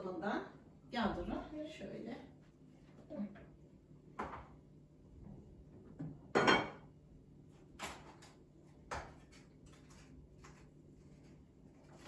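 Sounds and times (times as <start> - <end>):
kitchenware clinking: 6.3 - 6.9.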